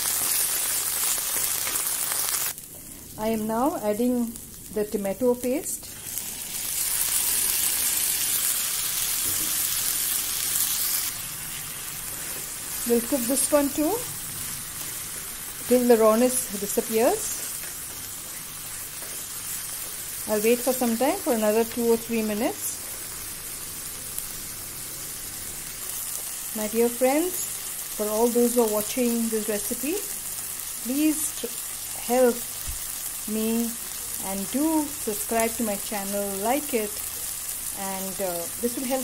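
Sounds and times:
paste sizzling in hot oil: 0.0s - 3.1s, 5.9s - 39.0s.

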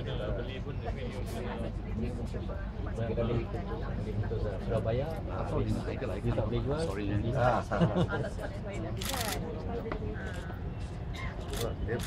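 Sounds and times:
hubbub of voices: 0.0s - 12.0s
people talking close by: 0.0s - 12.0s.

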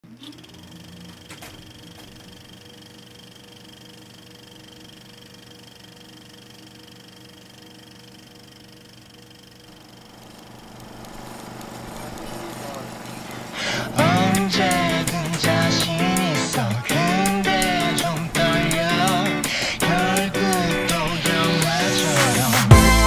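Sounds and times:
film projector whirring: 0.0s - 23.0s
projector clicks: 0.1s - 5.6s, 9.4s - 22.6s.

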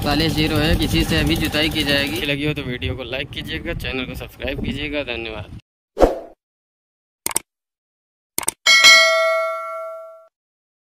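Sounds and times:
bell-like ding: 8.7s - 10.3s.

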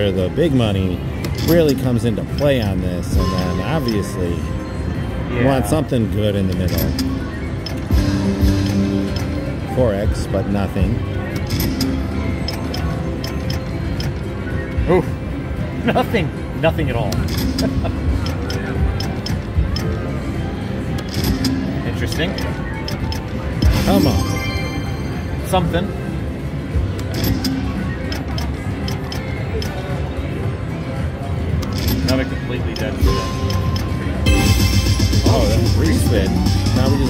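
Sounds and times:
slot machine electronic music: 0.0s - 30.0s, 31.5s - 37.0s
background chatter: 8.9s - 34.5s.

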